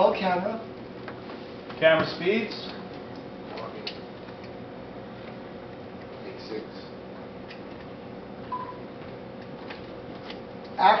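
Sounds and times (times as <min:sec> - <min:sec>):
faint room hum: 0:00.0 - 0:11.0
short electronic beep: 0:08.5 - 0:08.8.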